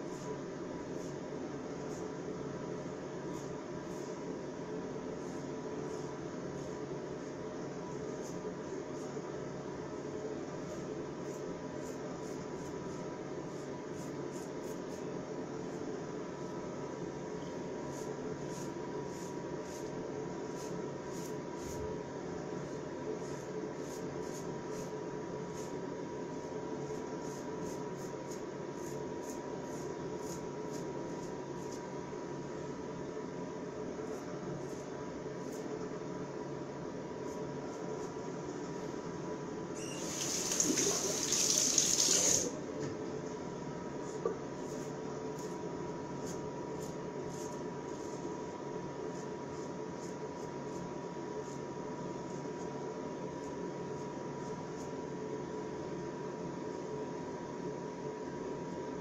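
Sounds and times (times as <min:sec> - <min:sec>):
steady background hum: 0:00.0 - 0:59.0
tap running: 0:39.9 - 0:42.5.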